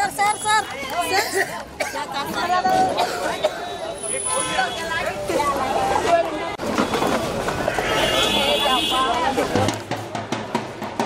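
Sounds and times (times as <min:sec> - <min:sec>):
voices talking and calling out: 0:00.0 - 0:10.6.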